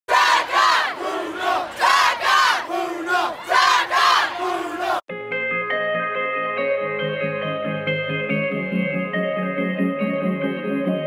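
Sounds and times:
group of people shouting: 0.1 - 5.0
calm music with held notes: 5.1 - 11.0.

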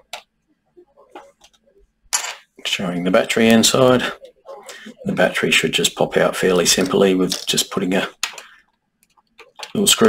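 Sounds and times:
plastic parts clicking on desk: 8.2 - 9.9.

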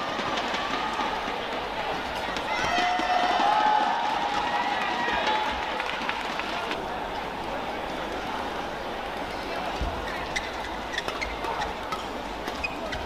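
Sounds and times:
arena crowd noise: 0.0 - 13.0
shoes squeaking on court: 10.0 - 13.0.

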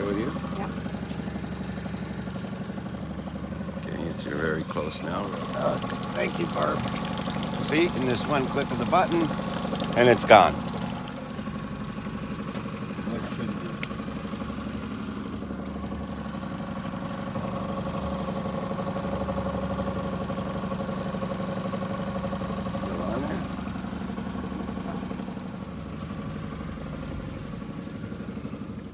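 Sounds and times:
outboard motor running: 0.0 - 28.9.

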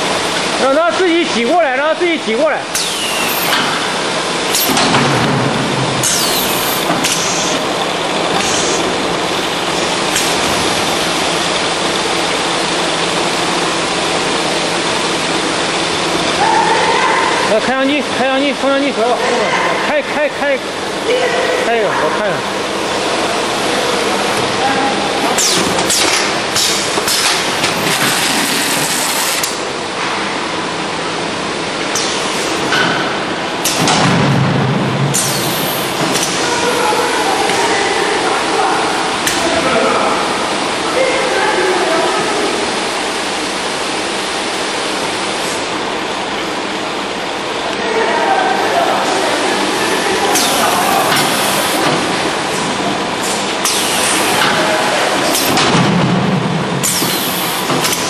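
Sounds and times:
packing machine running: 2.6 - 16.6, 22.5 - 37.5, 49.6 - 58.0
pneumatic air hisses: 2.8 - 3.6, 6.0 - 7.6, 8.3 - 8.9, 25.4 - 29.6, 35.1 - 36.3, 53.2 - 54.4, 56.8 - 58.0
packing machinery din: 2.8 - 11.7, 25.3 - 29.6
sharp mechanical clacks: 56.8 - 58.0.

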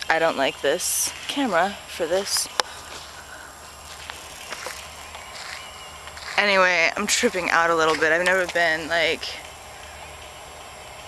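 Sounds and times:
faint footsteps: 2.2 - 8.8.

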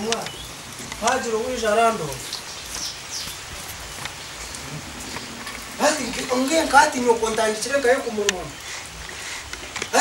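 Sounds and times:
steady rain falling: 0.0 - 10.0
man speaking: 5.8 - 8.2.

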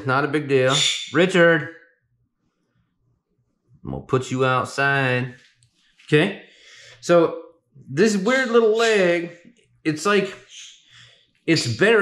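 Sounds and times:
man speaking: 0.0 - 1.7, 3.9 - 5.4, 6.1 - 10.7, 11.5 - 12.0.

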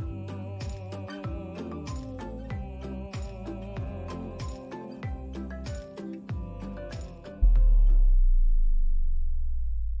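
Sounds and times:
deep bass tone: 0.0 - 10.0.

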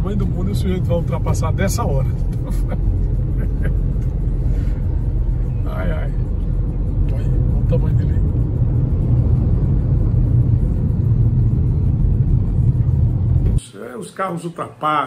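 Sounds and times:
car engine and tyres rumbling: 0.0 - 13.6.

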